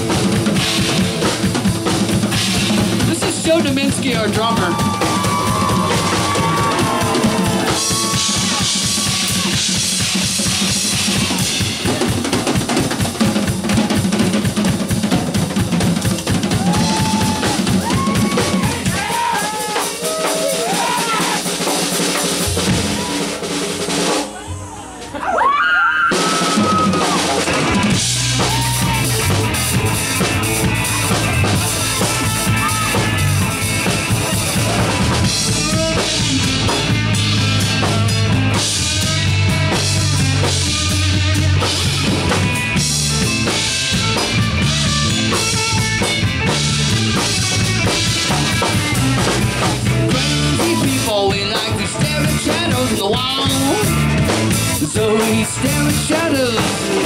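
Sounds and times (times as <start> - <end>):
drum kit played hard: 0.0 - 24.8, 26.1 - 57.0
bass: 0.0 - 57.0.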